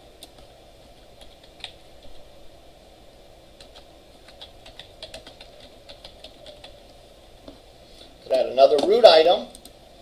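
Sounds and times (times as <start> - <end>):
computer keyboard typing: 1.2 - 2.2, 3.6 - 6.8.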